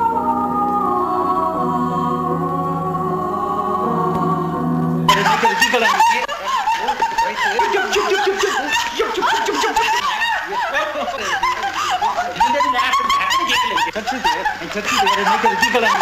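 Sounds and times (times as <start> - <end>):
woman laughing wildly: 5.1 - 16.0.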